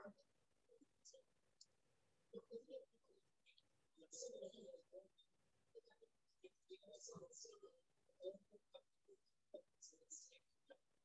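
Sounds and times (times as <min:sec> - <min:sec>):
faint indistinct sounds: 0:00.0 - 0:11.0
faint clicks: 0:01.5 - 0:01.8.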